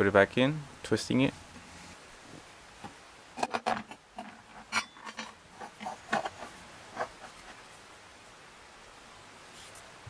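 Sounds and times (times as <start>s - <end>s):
glass scraping and knocking on metal: 3.4s - 7.4s.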